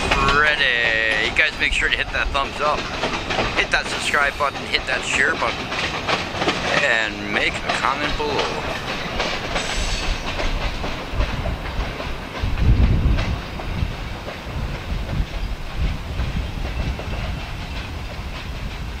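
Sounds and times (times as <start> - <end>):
train wheels rumbling on rails: 0.0 - 19.0.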